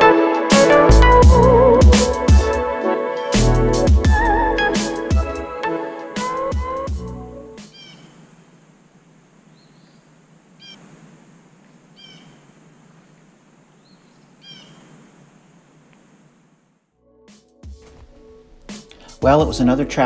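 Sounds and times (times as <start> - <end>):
electronic music: 0.0 - 7.6
faint steady hiss: 7.0 - 17.0
high-pitched animal calls: 7.7 - 8.2, 12.0 - 12.4, 14.4 - 14.8.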